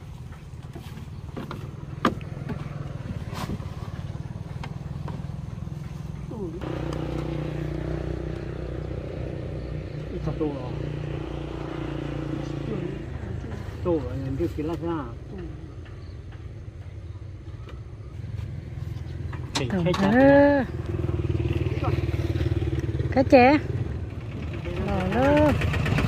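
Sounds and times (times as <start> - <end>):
engine idling: 0.0 - 26.0.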